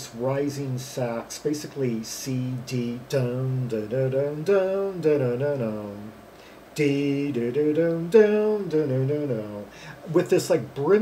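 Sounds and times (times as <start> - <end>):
man singing wordless phrase: 0.0 - 11.0.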